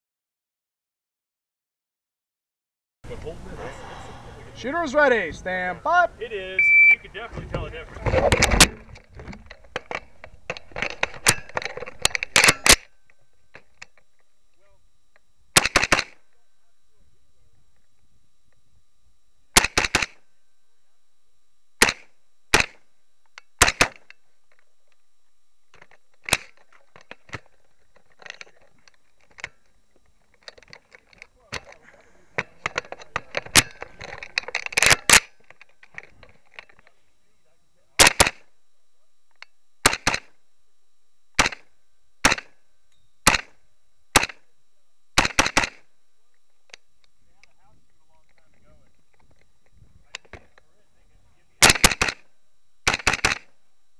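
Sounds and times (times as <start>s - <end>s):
carbine gunshots: 8.2s - 12.9s, 15.5s - 16.2s, 19.5s - 20.2s, 21.8s - 22.8s, 23.6s - 24.1s, 31.6s - 35.5s, 38.0s - 38.5s, 39.8s - 40.4s, 41.4s - 42.6s, 43.2s - 44.4s, 45.2s - 45.9s, 51.6s - 53.5s.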